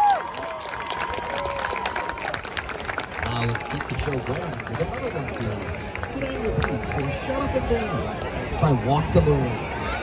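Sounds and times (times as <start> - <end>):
crowd applauding and cheering: 0.0 - 9.5.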